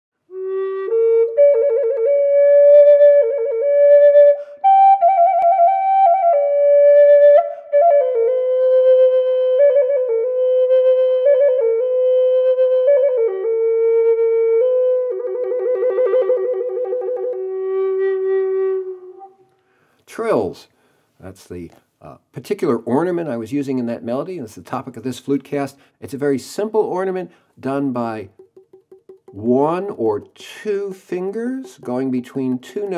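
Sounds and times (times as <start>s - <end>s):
flute melody with trills: 0.2s - 19.5s.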